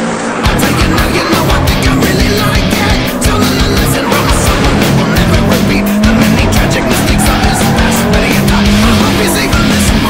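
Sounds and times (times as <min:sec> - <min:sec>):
hard rock music: 0:00.0 - 0:10.0
rally car engine running hard: 0:00.0 - 0:10.0.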